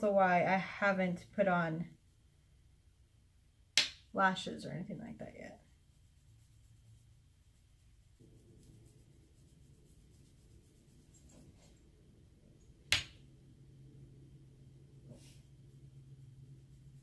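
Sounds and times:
low steady hum: 0.0s - 17.0s
brush scratching on mesh: 5.2s - 12.0s, 15.0s - 17.0s.

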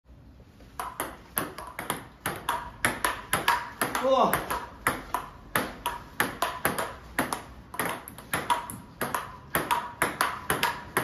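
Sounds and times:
table tennis ball clicking: 0.8s - 11.0s.

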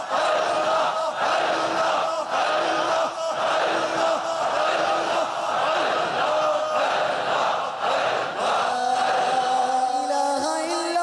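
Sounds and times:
crowd of men chanting: 0.0s - 10.8s.

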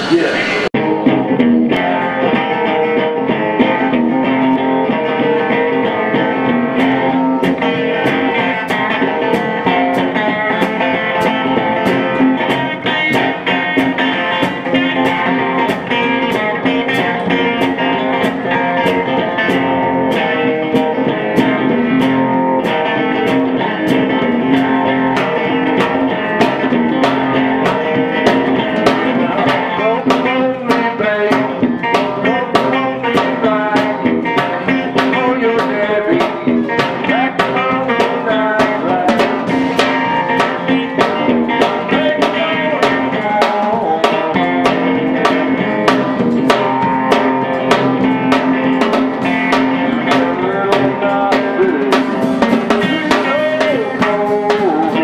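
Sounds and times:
drum kit beat: 0.0s - 55.0s
electric guitar blues: 0.0s - 55.0s.

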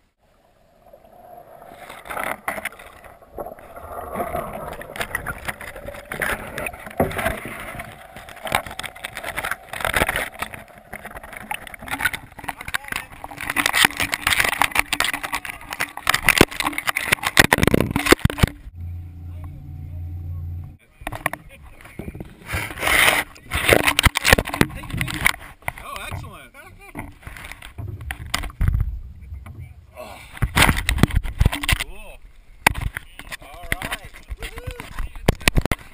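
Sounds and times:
water sloshing: 0.0s - 35.9s
loud low thump and rubbing: 26.9s - 29.8s.

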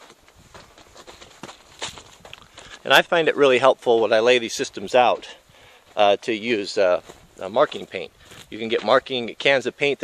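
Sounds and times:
footsteps on dry dirt: 0.0s - 9.6s.

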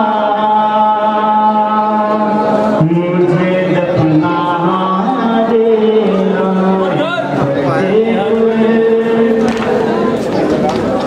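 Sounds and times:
man chanting lament: 0.0s - 10.1s.

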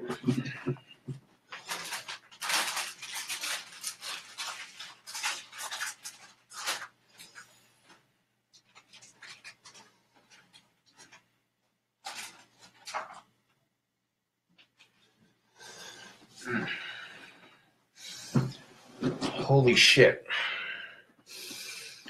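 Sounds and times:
rustling and handling noises: 0.0s - 13.6s, 14.5s - 16.5s.

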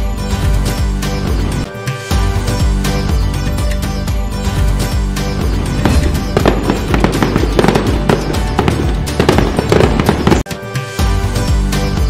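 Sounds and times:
background music: 0.0s - 12.0s
fireworks crackling and popping: 5.6s - 10.5s.

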